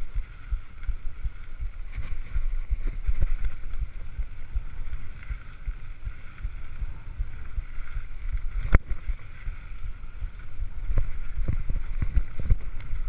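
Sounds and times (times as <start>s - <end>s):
bike tyres rumbling on dirt: 0.0s - 13.0s.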